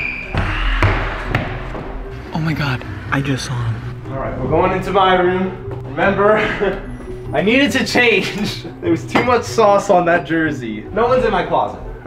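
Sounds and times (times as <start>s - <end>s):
background music: 0.0s - 12.0s
footsteps running up stairs: 0.3s - 2.1s.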